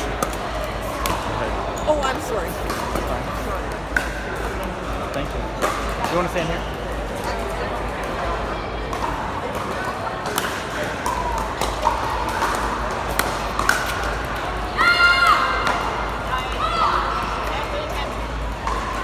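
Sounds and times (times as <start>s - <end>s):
crowd chatter in large hall: 0.0s - 19.0s
paddles hitting plastic ball: 8.9s - 14.4s.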